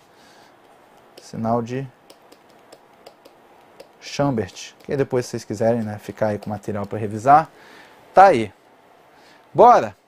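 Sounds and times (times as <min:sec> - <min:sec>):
stylus tapping on tablet screen: 0:00.6 - 0:01.4, 0:02.0 - 0:07.3.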